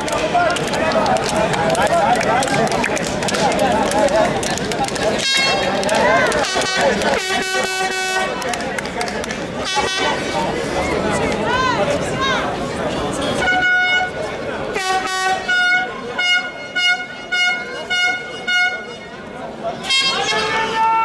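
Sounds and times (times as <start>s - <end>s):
crowd chattering: 0.0s - 21.0s
air horn blasts: 6.4s - 8.4s, 9.6s - 10.2s, 13.4s - 14.2s, 14.8s - 19.2s, 19.8s - 21.0s.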